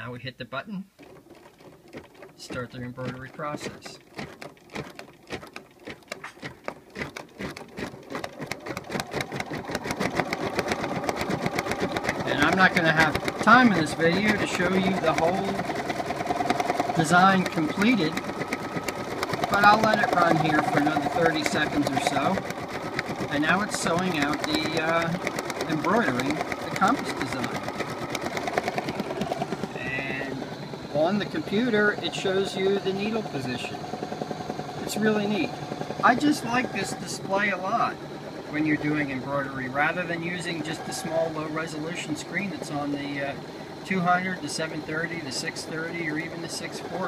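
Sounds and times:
sewing machine stitching: 0.9 - 47.0.

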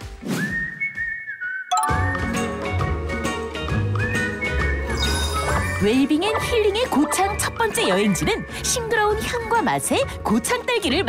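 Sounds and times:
high whistle sound effect: 0.2 - 2.3
bright chiming music sting: 1.7 - 2.6.

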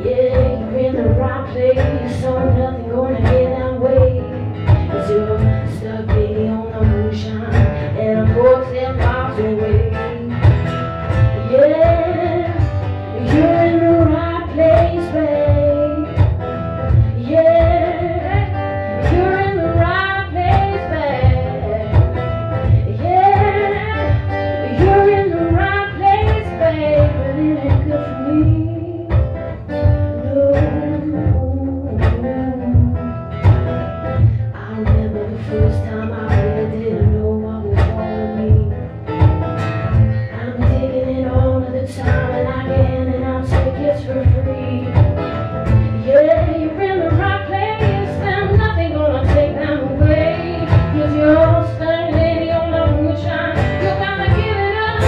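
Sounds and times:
acoustic guitar strumming: 0.0 - 55.0
woman singing soul song: 0.0 - 55.0.

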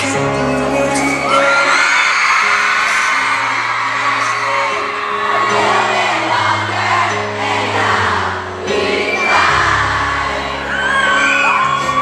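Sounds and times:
male voice singing pop ballad: 0.0 - 5.0
piano and band: 0.0 - 12.0
fans whooping: 0.6 - 6.7, 8.7 - 12.0.

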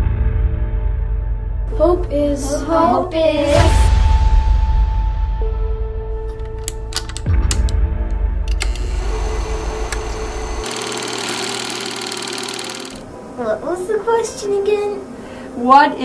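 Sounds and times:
background music: 0.0 - 16.0
film camera mechanical clatter: 6.3 - 7.8, 8.5 - 13.0
camera clicks: 8.6 - 13.0.

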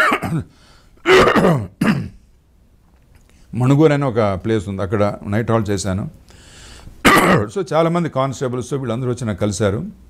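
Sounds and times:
man clearing his throat: 0.0 - 2.2, 7.0 - 7.5.

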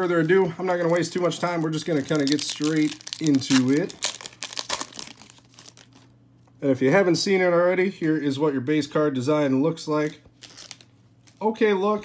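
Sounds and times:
foil wrapper crinkling and tearing: 0.0 - 6.1, 10.0 - 11.6.

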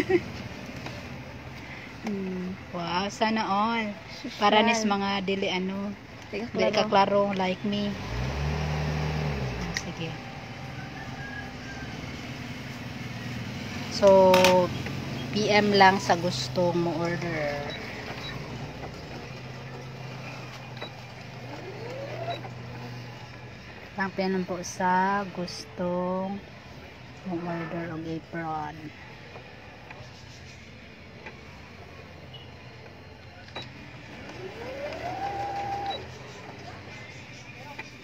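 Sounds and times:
electric sewing machine running: 17.0 - 23.3, 33.9 - 36.5.

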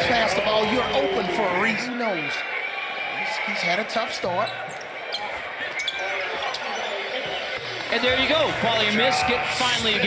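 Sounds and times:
crowd noise: 0.0 - 10.0
sneakers squeaking on hardwood: 4.4 - 7.7.

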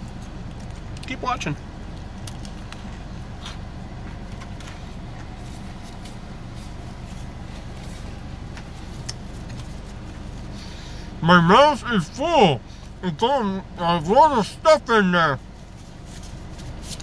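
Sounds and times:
car engine idling: 0.0 - 17.0
chewing and sandwich handling clicks: 1.9 - 5.3.

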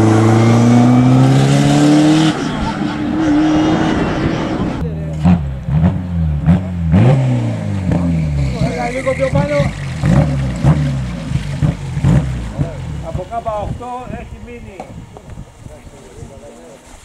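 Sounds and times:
car engine braking and downshifting: 0.0 - 13.9
engine throttle blips: 0.0 - 14.0.

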